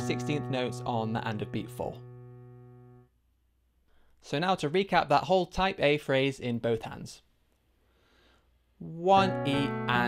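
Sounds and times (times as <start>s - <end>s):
low piano note: 0.0s - 3.0s, 9.2s - 10.0s.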